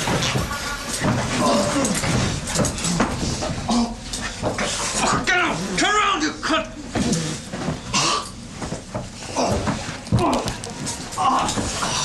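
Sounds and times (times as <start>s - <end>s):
noisy dense background: 0.0s - 12.0s.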